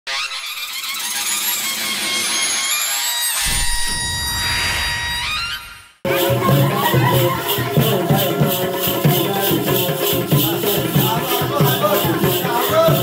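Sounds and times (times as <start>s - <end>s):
deep low hit: 3.5s - 5.9s.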